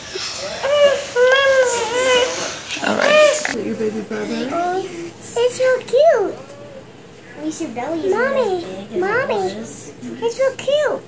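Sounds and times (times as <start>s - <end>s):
newborn baby crying: 0.4s - 3.6s.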